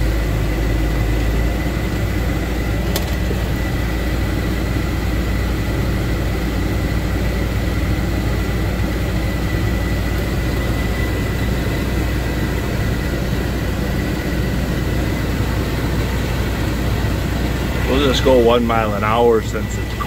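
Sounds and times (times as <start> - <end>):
tractor diesel engine running: 0.0 - 20.0
thin high whine: 9.7 - 20.0.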